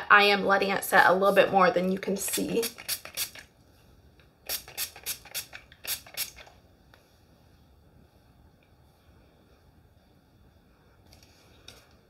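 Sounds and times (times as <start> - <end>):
hairspray hisses: 4.5 - 6.4.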